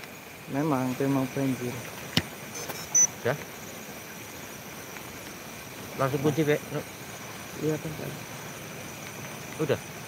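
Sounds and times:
crickets chirring: 0.0 - 10.0
short high beep: 2.6 - 3.1.

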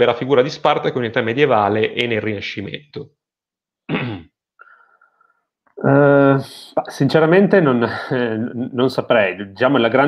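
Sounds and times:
person clearing throat: 3.9 - 4.4.

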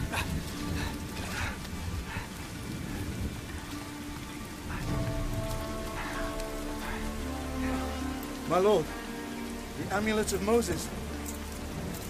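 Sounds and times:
low rumbles of thunder: 0.0 - 8.3
film score sustained notes: 0.0 - 12.0
steady rain falling: 0.0 - 12.0.

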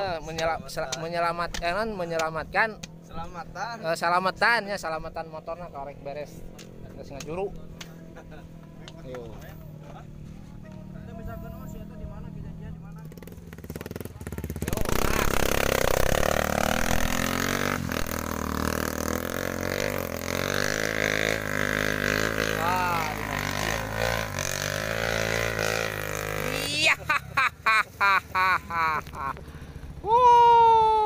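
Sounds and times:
dirt bike engines under load: 19.9 - 30.1.

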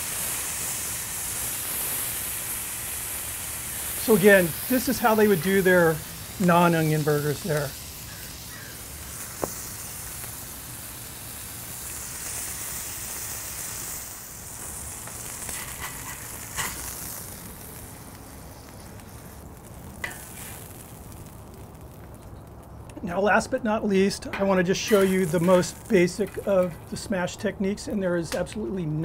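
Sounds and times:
burger patty sizzling on griddle: 0.0 - 23.5, 24.3 - 27.4.

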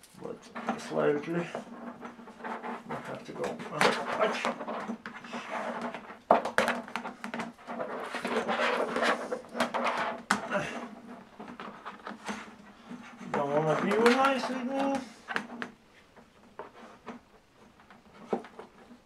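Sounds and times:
plastic sheet rustling and scraping: 0.0 - 19.0.

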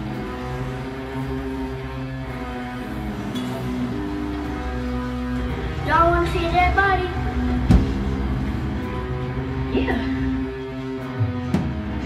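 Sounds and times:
low amplifier drone: 0.0 - 12.0.

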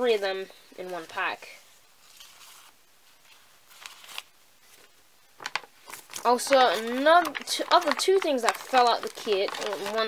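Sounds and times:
packet crinkle: 3.7 - 10.0
packets rustling: 3.7 - 10.0.

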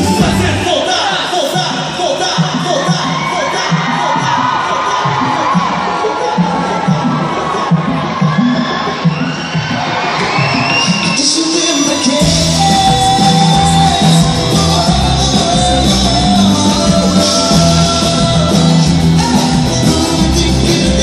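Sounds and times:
music with steady bass beat: 0.0 - 1.0, 5.1 - 21.0
concert crowd cheering: 0.0 - 21.0.

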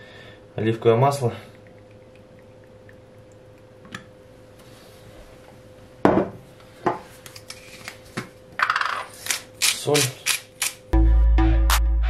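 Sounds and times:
glass knocking on countertop: 6.0 - 7.0.

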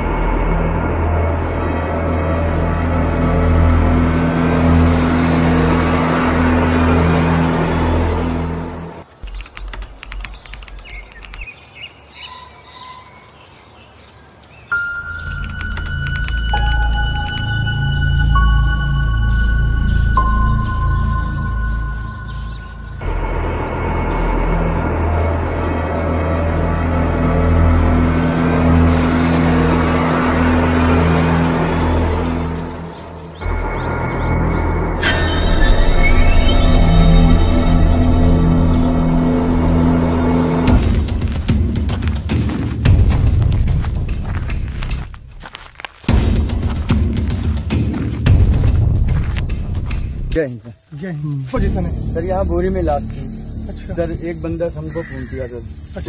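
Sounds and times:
droning horror music: 0.0 - 9.1, 14.7 - 50.4, 51.5 - 56.0
birds chirping: 0.0 - 56.0
faint clicks: 9.2 - 11.5
high electronic tone: 33.4 - 40.1, 51.6 - 56.0.

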